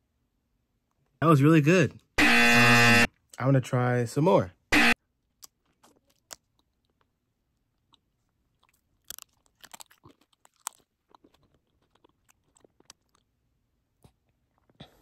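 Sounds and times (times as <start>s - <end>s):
candy crunching and chewing: 5.1s - 14.8s.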